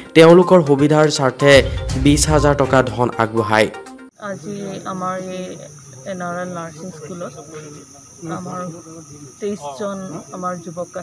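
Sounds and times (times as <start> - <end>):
person speaking: 1.5 - 3.8
high-pitched insect chirring: 4.1 - 11.0.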